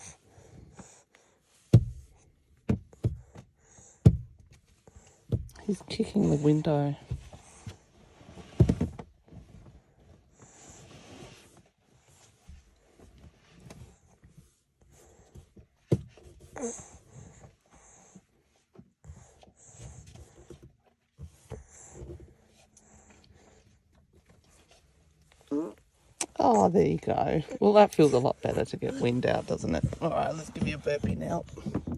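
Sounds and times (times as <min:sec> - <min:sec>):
baby sucking and swallowing: 0:24.4 - 0:26.4.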